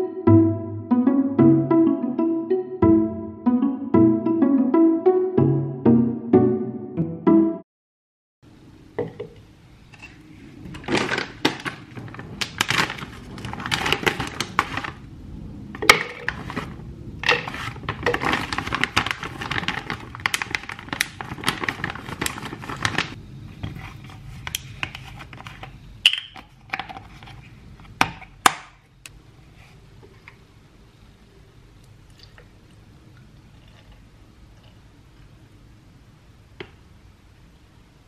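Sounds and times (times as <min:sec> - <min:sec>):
plastic bag crinkling: 0:10.7 - 0:15.1, 0:15.9 - 0:23.2.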